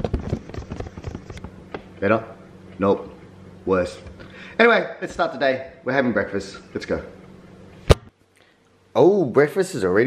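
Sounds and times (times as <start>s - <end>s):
fingers rubbing and tapping camera: 0.0s - 1.9s.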